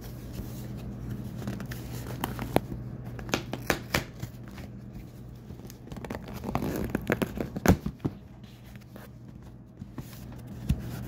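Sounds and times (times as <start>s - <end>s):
packaging rustling: 0.8s - 11.0s.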